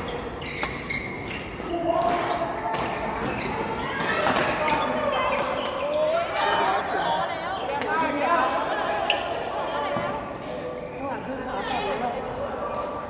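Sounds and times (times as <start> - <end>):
voices: 1.6 - 13.0.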